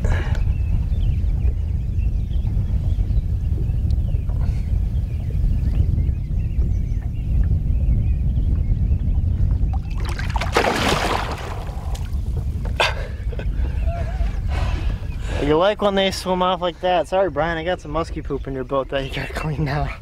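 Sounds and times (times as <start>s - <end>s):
muffled water rumble: 0.0s - 20.0s.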